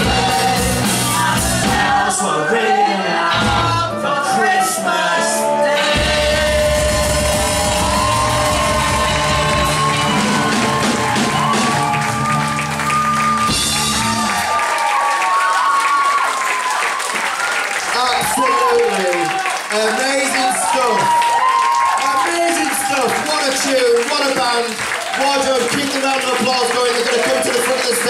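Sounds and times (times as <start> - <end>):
live rock band: 0.0 - 14.6
audience clapping and cheering: 5.9 - 28.0.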